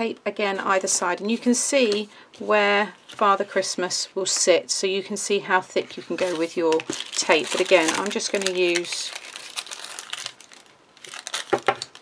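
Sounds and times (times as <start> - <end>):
tape crackling over card: 5.9 - 12.0.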